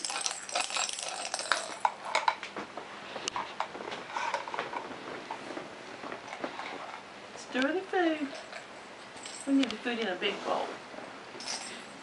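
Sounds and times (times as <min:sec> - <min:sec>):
plastic spoons clicking in bowls: 0:00.0 - 0:02.4.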